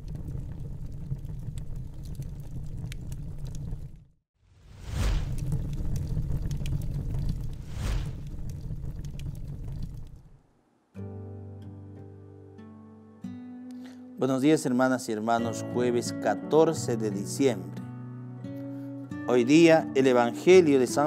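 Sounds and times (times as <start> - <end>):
flames whooshing flare-ups: 0.0 - 10.4
fire rumbling and crackling: 0.0 - 10.5.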